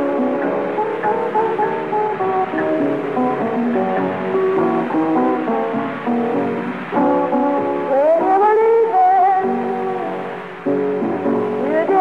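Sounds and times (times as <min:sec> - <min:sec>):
blues guitar: 0:00.0 - 0:12.0
woman singing: 0:07.8 - 0:09.7, 0:11.6 - 0:12.0.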